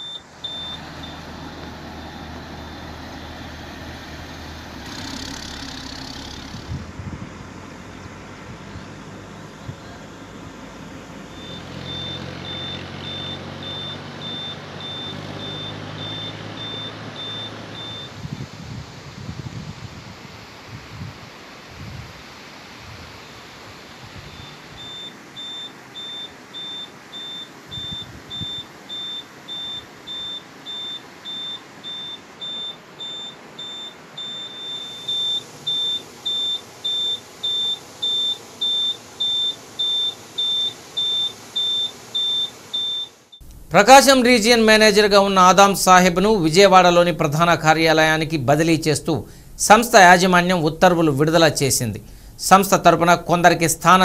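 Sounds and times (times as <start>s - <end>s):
electronic vehicle warning beeper: 0.0s - 3.4s, 11.2s - 18.2s, 24.2s - 46.6s
engine running: 0.0s - 18.9s.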